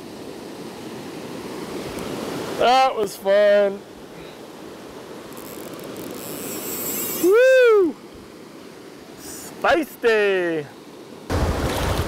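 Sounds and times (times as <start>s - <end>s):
river water rushing over rocks: 0.0s - 5.3s, 6.6s - 12.0s
faint high hiss: 0.0s - 11.3s.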